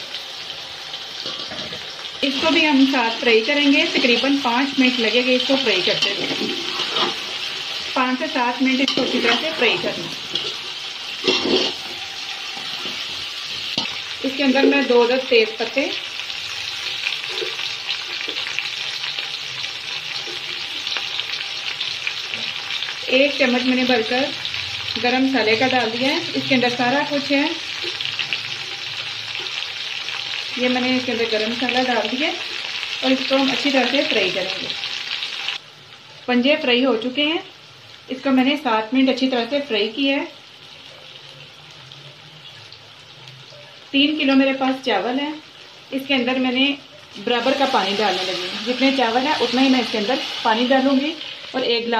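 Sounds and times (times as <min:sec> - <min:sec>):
food sizzling in a pot: 0:00.0 - 0:51.9.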